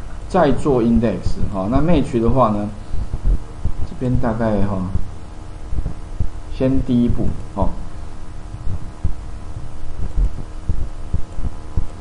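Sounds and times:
steady electrical hum: 0.0s - 12.0s
low microphone handling thumps: 1.0s - 12.0s.

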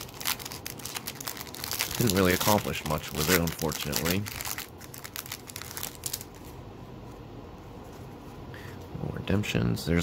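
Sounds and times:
cards rustling: 0.0s - 6.6s
foil wrapper crinkling: 0.0s - 6.6s
low steady room hum: 0.0s - 10.0s.

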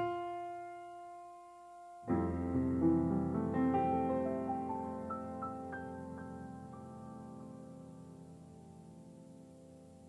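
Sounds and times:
grand piano playing: 0.0s - 1.3s, 2.0s - 9.6s.

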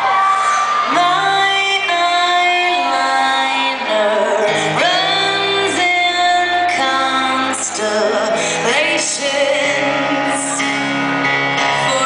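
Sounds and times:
piano accompaniment: 0.2s - 12.0s
woman singing: 0.4s - 10.8s, 11.7s - 12.0s.

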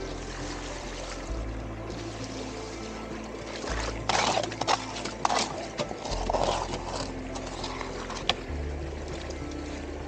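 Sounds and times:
background music: 0.0s - 10.0s
water splashing: 0.0s - 10.0s.

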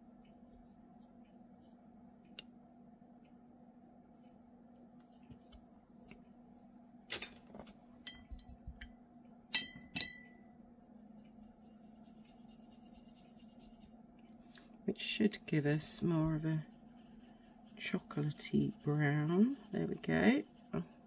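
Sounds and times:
paintbrush clinking on ceramic palette: 8.0s - 8.6s, 9.5s - 10.4s.

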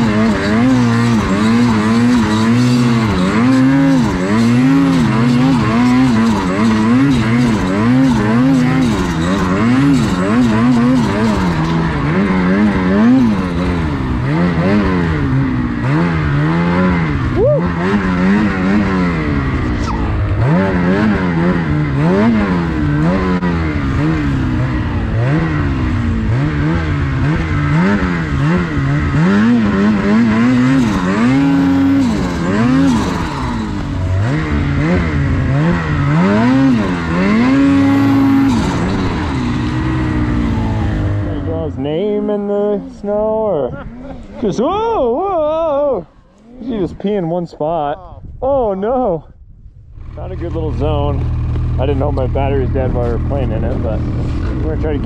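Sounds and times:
snowmobile engine revving: 0.0s - 49.2s, 50.0s - 55.0s.

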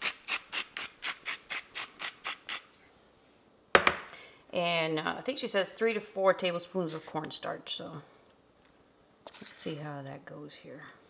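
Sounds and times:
sharp knock: 3.8s - 4.1s.

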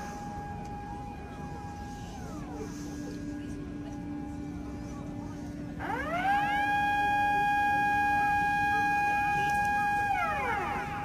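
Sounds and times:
warning siren winding: 5.8s - 11.0s.

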